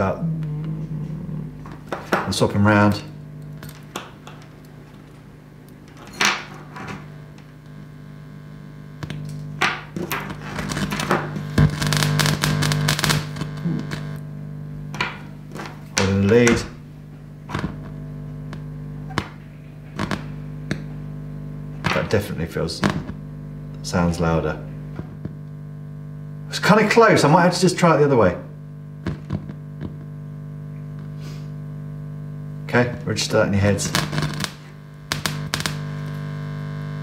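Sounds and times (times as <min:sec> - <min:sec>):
amplifier mains hum: 0:00.0 - 0:37.0.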